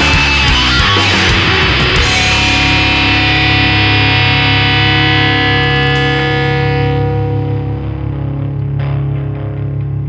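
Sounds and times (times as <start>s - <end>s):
band playing: 0.0s - 8.6s
distorted electric guitar chord: 0.0s - 10.0s
sustained low note: 2.0s - 9.8s.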